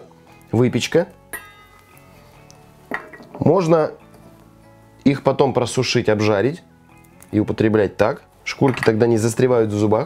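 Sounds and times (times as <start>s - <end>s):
soft background music: 0.0s - 10.0s
almond dropping into metal bowl: 2.9s - 3.6s, 8.6s - 9.1s.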